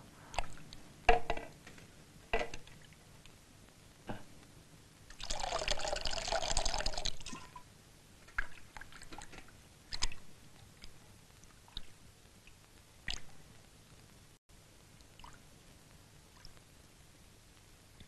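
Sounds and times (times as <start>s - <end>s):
bowl knocking in a basin: 1.1s - 1.6s, 2.4s - 2.7s
water pouring into a basin: 5.1s - 7.6s.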